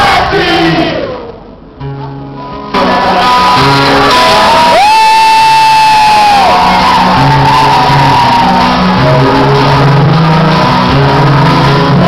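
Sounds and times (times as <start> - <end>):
rock band playing: 1.9 - 12.0.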